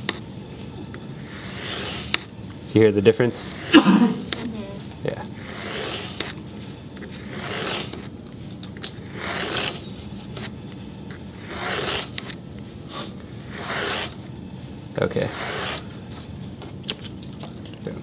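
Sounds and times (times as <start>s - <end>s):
knife scraping cardboard: 1.1s - 2.3s, 5.3s - 6.4s, 7.0s - 8.1s, 8.8s - 10.6s, 11.2s - 14.2s, 15.2s - 16.2s.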